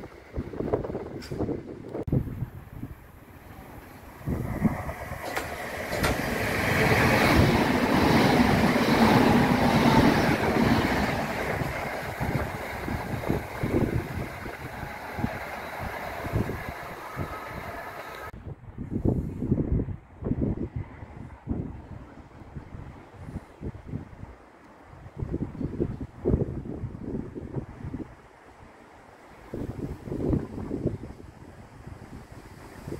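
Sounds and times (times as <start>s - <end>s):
wind buffeting microphone: 0.0s - 28.8s, 29.4s - 32.9s
electric train passing: 2.1s - 18.4s.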